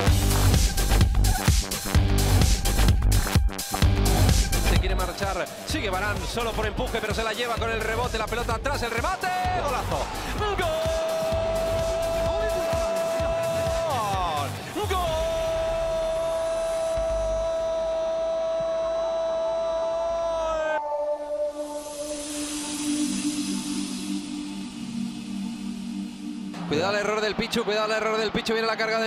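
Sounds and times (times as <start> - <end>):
stadium background: 0.0 - 23.2, 25.6 - 29.0
commentator crying goal: 4.8 - 21.0.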